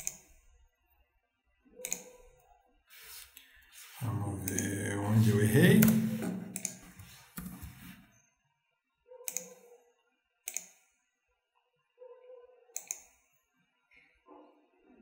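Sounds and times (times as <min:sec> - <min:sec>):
mouse and keyboard clicks: 0:01.8 - 0:02.2, 0:04.0 - 0:07.9, 0:10.5 - 0:10.8, 0:12.8 - 0:13.1.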